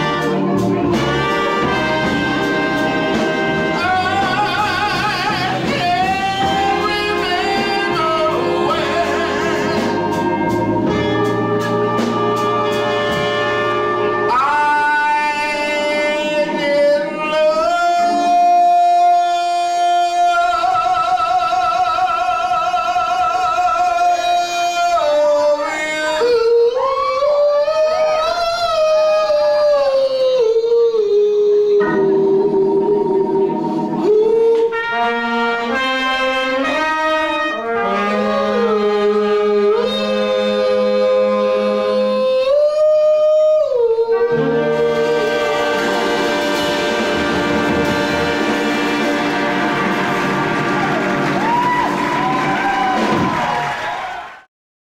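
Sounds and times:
crowd noise: 0.0s - 38.7s, 44.3s - 54.5s
man singing long held notes: 3.7s - 10.2s, 14.3s - 35.8s, 36.8s - 46.4s.

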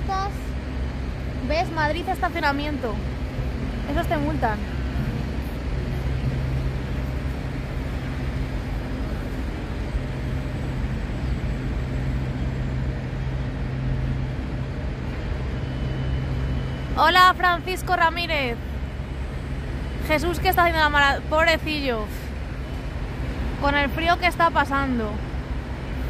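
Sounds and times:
low engine hum: 0.0s - 26.0s
urban traffic noise: 0.0s - 26.0s.

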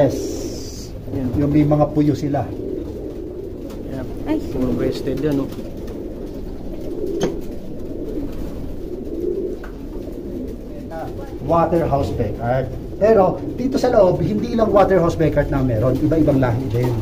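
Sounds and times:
pigeons cooing: 0.0s - 17.0s.

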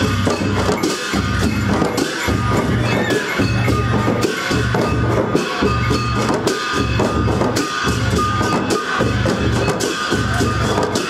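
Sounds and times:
drums beating: 0.0s - 11.0s.

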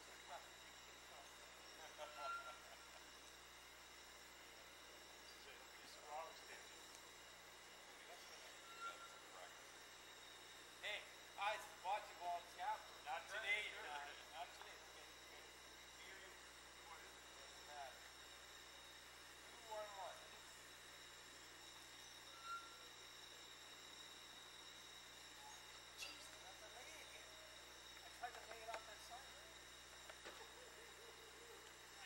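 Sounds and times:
faint high whine and hiss: 0.0s - 32.0s.

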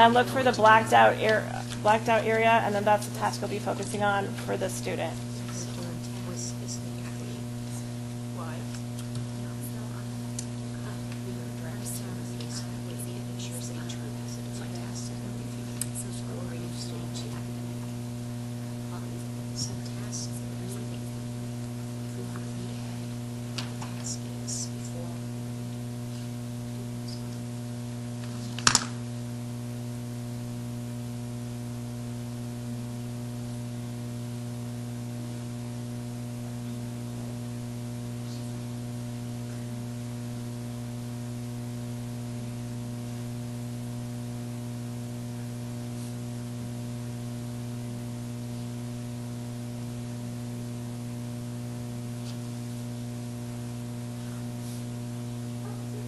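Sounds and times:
electrical mains hum: 0.0s - 56.0s.

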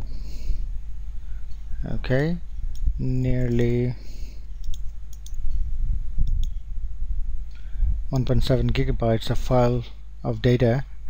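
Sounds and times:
steady low rumble: 0.0s - 11.0s
computer mouse clicking: 4.6s - 5.6s, 6.2s - 6.6s.

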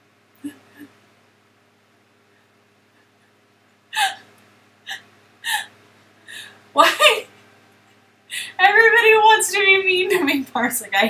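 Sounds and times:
stifled laughter gasps: 4.0s - 4.3s, 4.9s - 5.7s.

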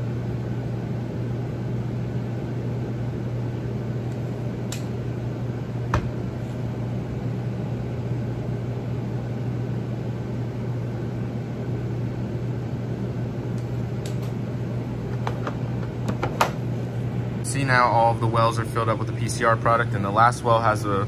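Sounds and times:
steady low hum: 0.0s - 21.0s
ventilation air rushing: 0.0s - 21.0s.

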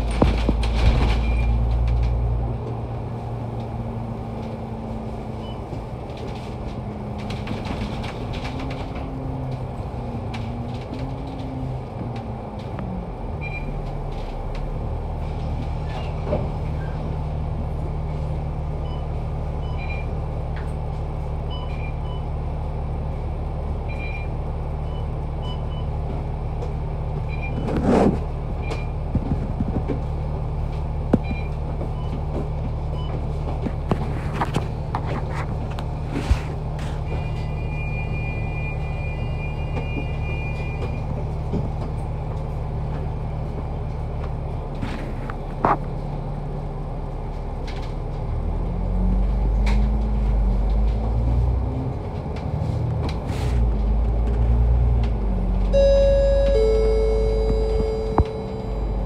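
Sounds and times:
bus diesel engine: 0.0s - 59.0s.

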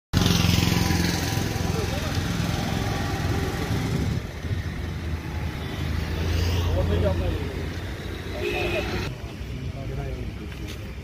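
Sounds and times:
people talking: 1.5s - 2.3s.

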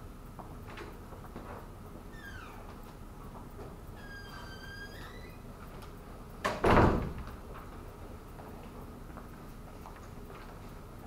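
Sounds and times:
high squeaks: 2.1s - 2.7s, 4.0s - 5.4s.

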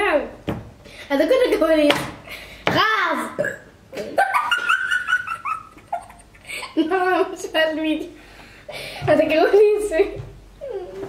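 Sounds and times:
girl laughing: 4.0s - 7.0s.

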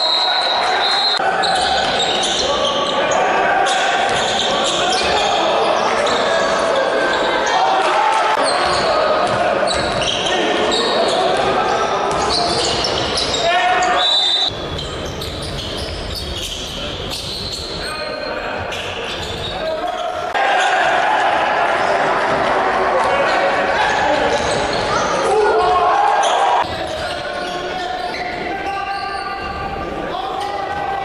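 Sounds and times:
players calling out: 0.0s - 31.0s
basketball bouncing on wooden court: 8.7s - 10.1s.

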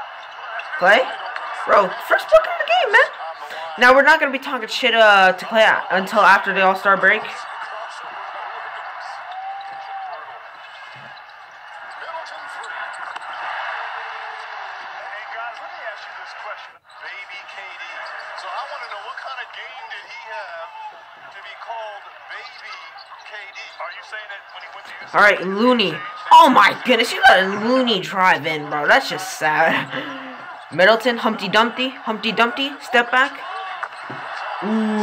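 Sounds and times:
commentators talking: 0.0s - 9.3s, 15.0s - 35.0s
arena crowd noise: 0.0s - 35.0s
basketball bouncing on court: 31.9s - 34.6s.

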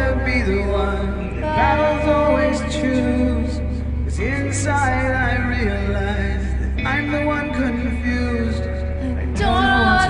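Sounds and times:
karaoke backing track: 0.0s - 10.0s
person singing: 0.0s - 10.0s.

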